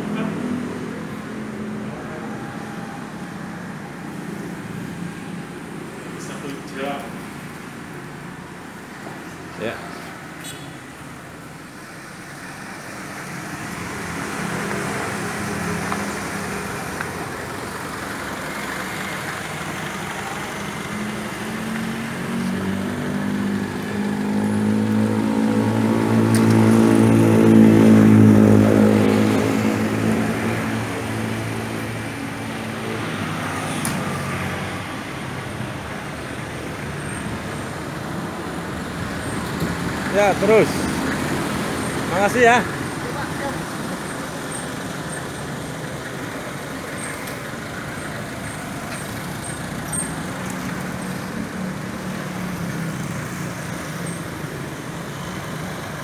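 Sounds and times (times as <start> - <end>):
street noise: 0.0 - 56.0
vehicle engine passing: 12.6 - 37.7.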